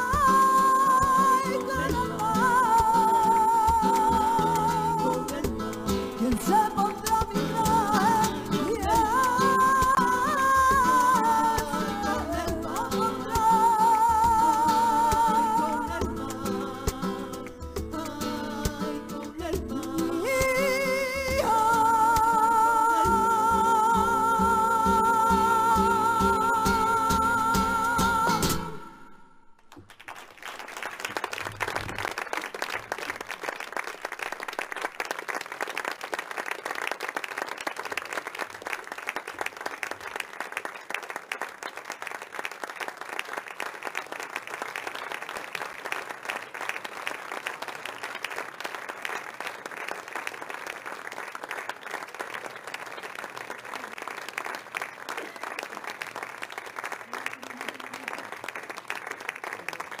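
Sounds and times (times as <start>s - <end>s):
audience applauding: 0.0s - 16.0s, 29.6s - 60.0s.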